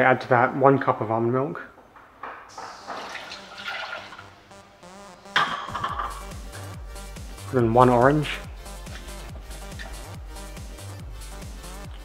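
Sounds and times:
milk pouring and splashing: 2.5 - 4.4.

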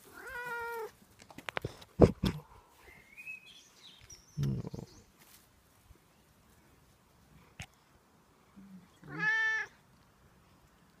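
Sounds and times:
cat meowing: 9.0 - 9.7.

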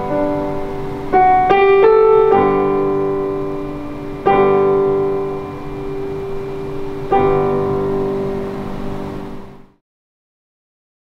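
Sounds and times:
piano chord ringing: 0.0 - 9.8.

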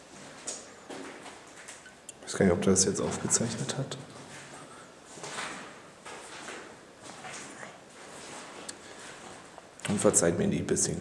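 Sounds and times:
scuffing and rustling of movement: 0.0 - 1.9, 2.8 - 10.2.

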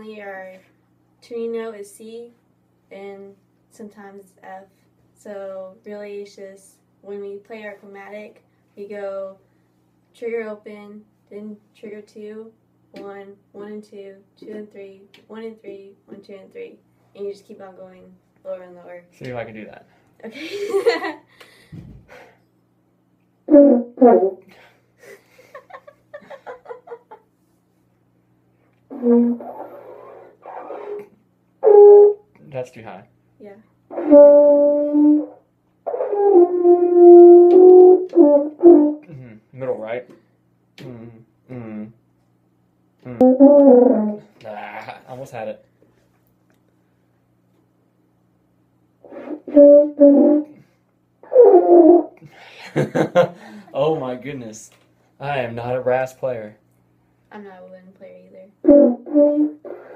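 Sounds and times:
french horn notes: 33.9 - 39.1, 43.2 - 44.3, 49.1 - 50.6.

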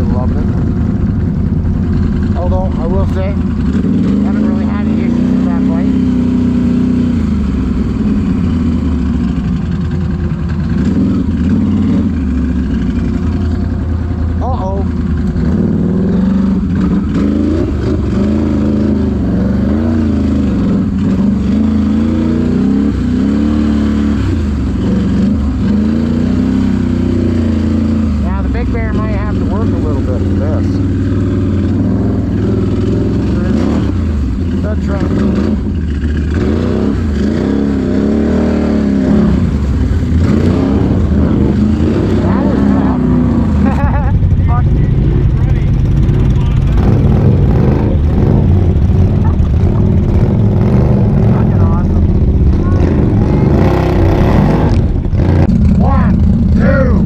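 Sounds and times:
atv engine running: 0.0 - 57.0.

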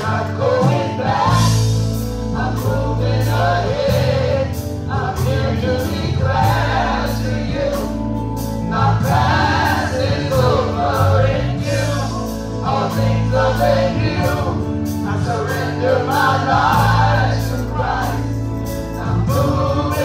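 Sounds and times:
group singing gospel: 0.0 - 20.0
sustained bass notes: 0.0 - 20.0.

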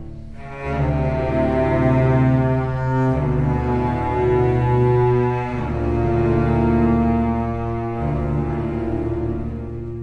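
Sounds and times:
low strings sustained chord: 0.0 - 10.0.

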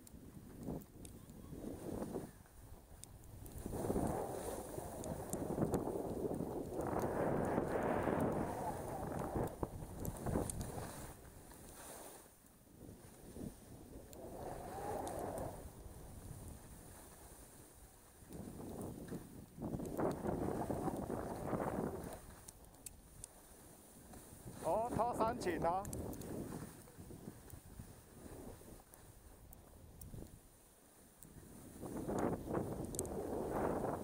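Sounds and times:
skis hissing over snow: 0.4 - 34.0
wind rushing over microphone: 3.2 - 11.5, 12.8 - 17.0, 18.3 - 22.4, 24.3 - 28.9, 31.5 - 34.0.

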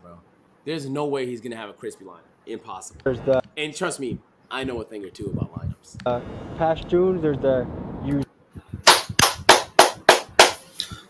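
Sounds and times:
hand claps: 8.9 - 10.7.

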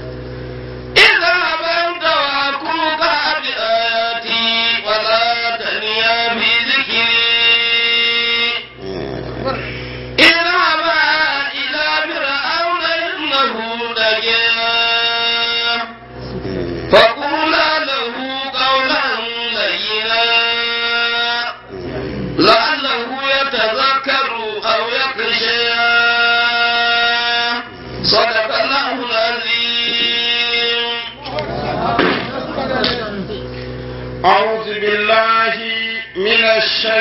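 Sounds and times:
low steady hum: 0.0 - 37.0
man chanting a long note: 0.9 - 37.0.

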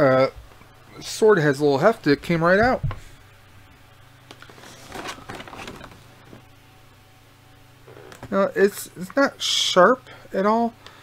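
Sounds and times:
soft rustling: 4.3 - 6.5.

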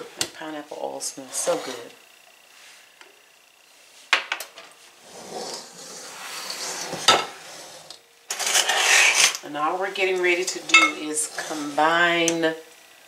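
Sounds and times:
soft scraping of stirring flour: 4.8 - 9.3, 9.9 - 12.1.

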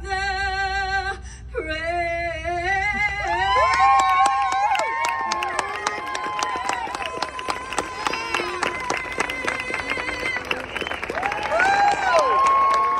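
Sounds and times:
crowd clapping and cheering: 3.2 - 12.9.

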